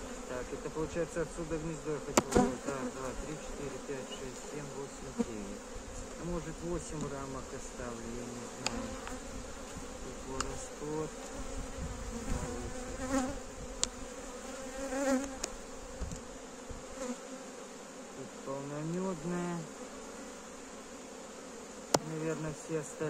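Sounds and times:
honeybees buzzing: 0.0 - 23.0
hive tool clicking on wooden frames: 2.1 - 3.2, 8.6 - 10.6, 15.0 - 16.3, 21.7 - 22.3.

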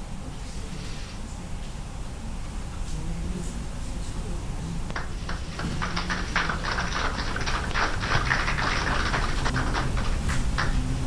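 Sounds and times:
low steady hum: 0.0 - 11.0
hands clapping: 4.9 - 11.0.

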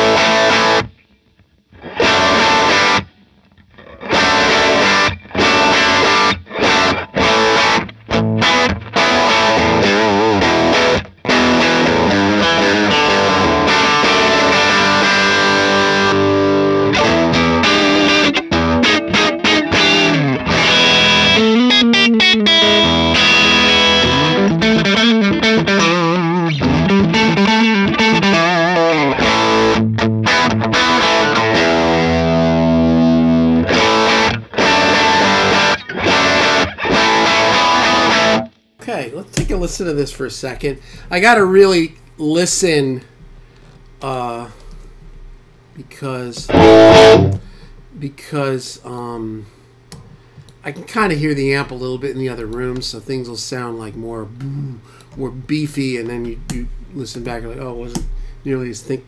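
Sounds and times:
electric guitar rock riffs: 0.0 - 38.6, 46.4 - 47.7.

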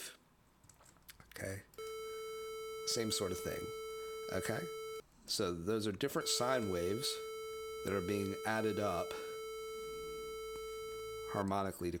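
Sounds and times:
square wave tone: 1.8 - 5.0, 6.2 - 11.4.

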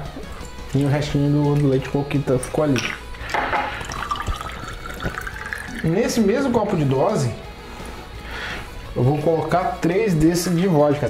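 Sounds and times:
liquid pouring into glass: 0.0 - 6.7.

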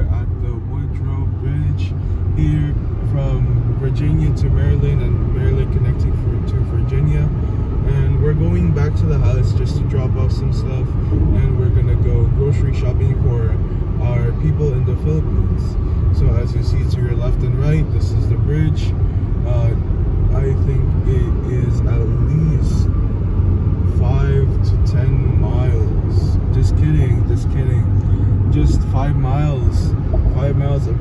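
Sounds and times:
car road and engine rumble: 0.0 - 31.0
person talking: 23.9 - 31.0.

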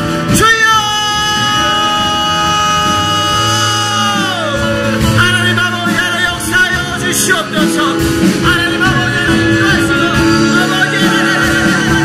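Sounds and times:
band accompaniment: 0.0 - 12.0
people singing worship song: 1.0 - 6.6, 8.4 - 12.0.

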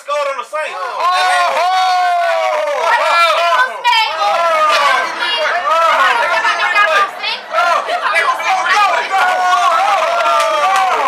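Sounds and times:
voices talking and shouting: 0.0 - 11.0.

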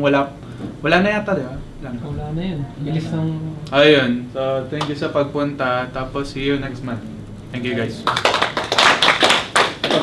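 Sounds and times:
small group applause: 8.0 - 10.0.

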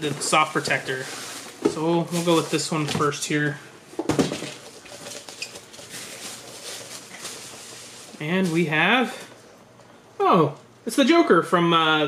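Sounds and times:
packaging rustling and crinkling: 0.0 - 9.1.

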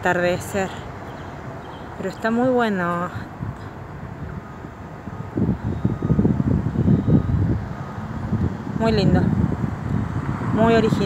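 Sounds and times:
wind buffeting microphone: 0.1 - 11.0.

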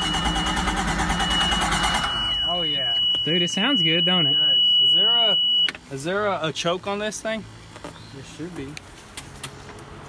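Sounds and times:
engine cranking by starter motor: 0.0 - 2.5
high-pitched warning tone: 0.0 - 5.7.

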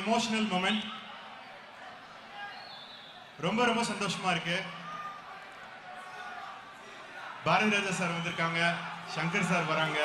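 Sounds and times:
large hall background noise: 0.0 - 10.0
man's voice echoing: 3.4 - 4.9, 7.4 - 10.0.

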